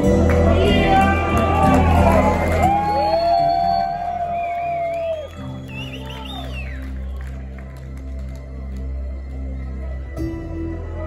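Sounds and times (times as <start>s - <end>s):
crowd whistling and cheering: 0.0s - 8.6s
ambient rock band playing live: 0.0s - 11.0s.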